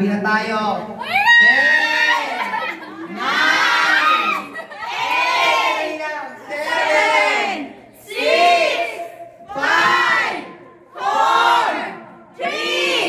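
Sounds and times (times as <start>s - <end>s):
group shouting in unison: 1.0s - 13.0s.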